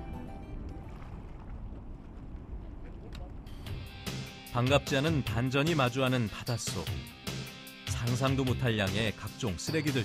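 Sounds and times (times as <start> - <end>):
background music: 0.0 - 1.1, 3.5 - 10.0
wind rumbling on microphone: 0.2 - 3.7.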